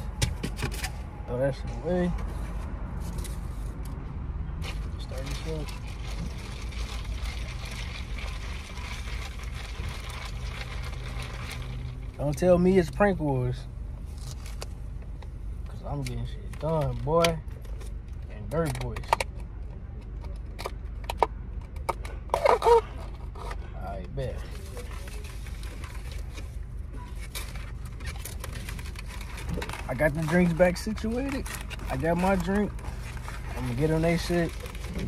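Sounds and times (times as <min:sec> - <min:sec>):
car engine rumble inside cabin: 0:00.0 - 0:35.0.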